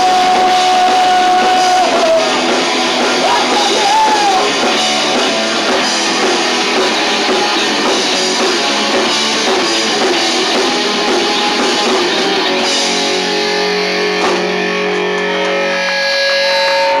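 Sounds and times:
distorted electric guitar: 0.0 - 17.0
drums: 0.0 - 17.0.

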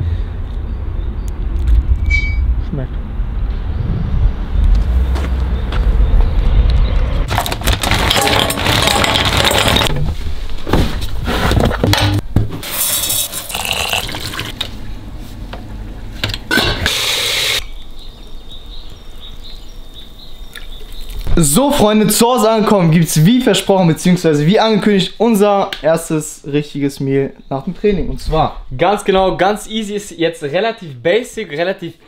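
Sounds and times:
traffic rumble: 0.0 - 12.3, 17.6 - 24.5
loud hiss: 16.8 - 17.6.

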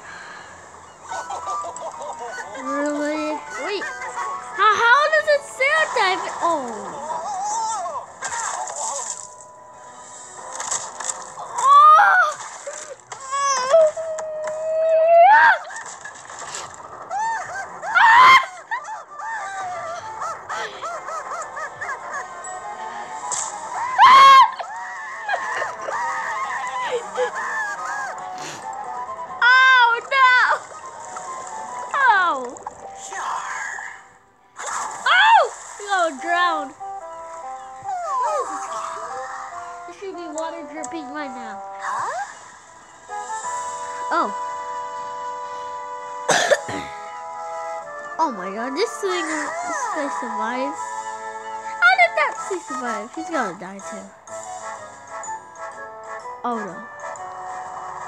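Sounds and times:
background music: 0.0 - 58.0
squeaky cartoon character voices: 2.3 - 9.2, 37.6 - 42.4, 48.2 - 54.1.

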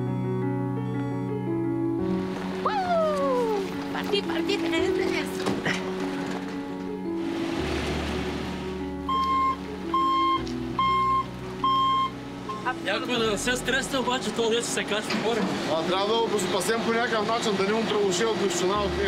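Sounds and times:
music with long held tones: 0.0 - 19.0
truck reversing alarm beeping: 9.0 - 12.8.

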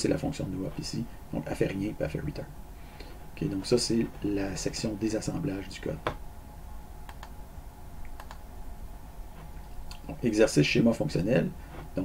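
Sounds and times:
faint low hum: 0.0 - 12.0
computer keys clicking: 7.1 - 7.3, 8.0 - 8.4.

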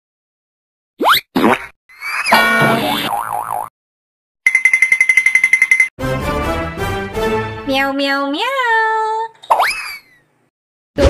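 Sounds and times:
springy boing: 2.3 - 3.7.

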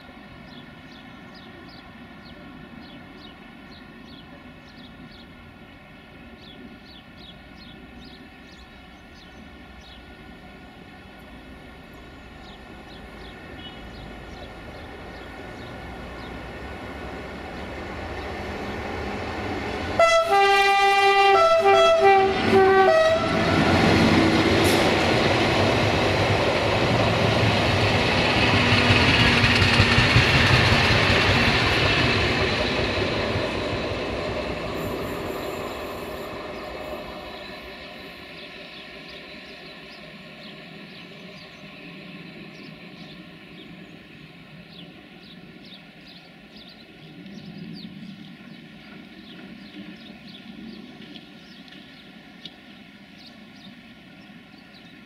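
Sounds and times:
train wheels rolling on rails: 0.0 - 20.8, 22.3 - 52.8
locomotive horn blasts: 20.0 - 23.9.

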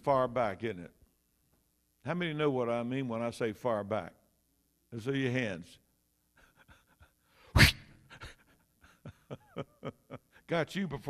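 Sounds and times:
loud puff of breath: 6.6 - 8.4.

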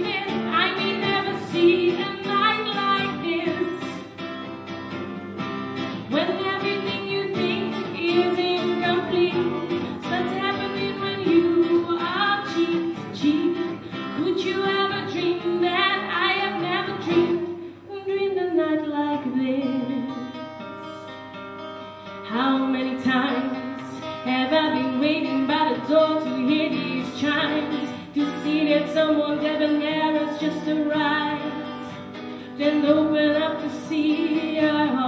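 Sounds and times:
woman singing a pop ballad: 0.0 - 4.2, 6.0 - 21.1, 22.2 - 35.0
strummed acoustic guitar: 0.0 - 17.8, 19.1 - 35.0.

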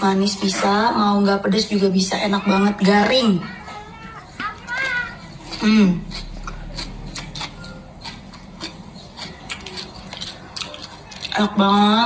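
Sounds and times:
crispy snack being chewed: 3.8 - 11.8.

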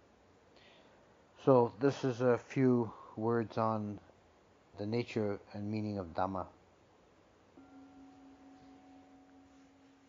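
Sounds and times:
bell ringing: 7.6 - 10.0.

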